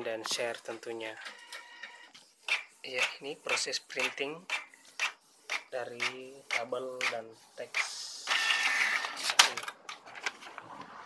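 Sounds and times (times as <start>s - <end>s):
printer motor and gear whine: 8.2s - 9.4s.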